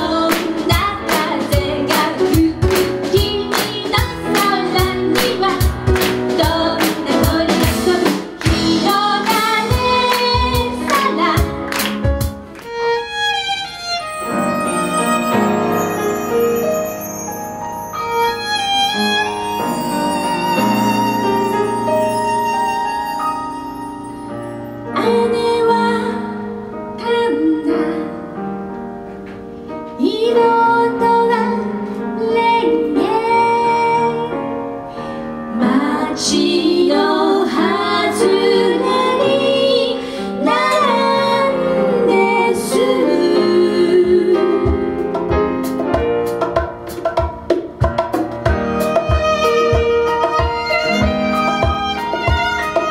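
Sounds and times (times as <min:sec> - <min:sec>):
piano accompaniment: 0:00.0 - 0:52.9
violin melody: 0:12.5 - 0:25.4, 0:48.5 - 0:52.9.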